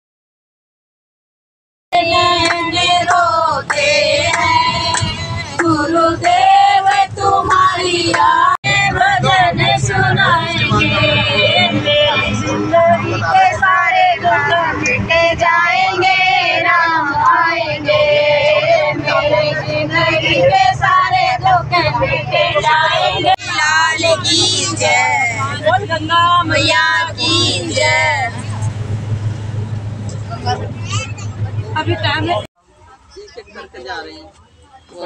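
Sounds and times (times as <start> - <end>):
bus rumble: 2.0 - 35.0.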